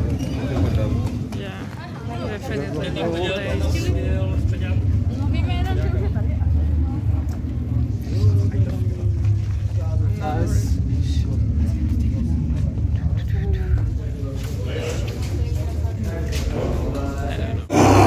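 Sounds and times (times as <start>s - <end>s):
people talking: 0.0s - 18.0s
steady low rumble: 0.0s - 18.0s.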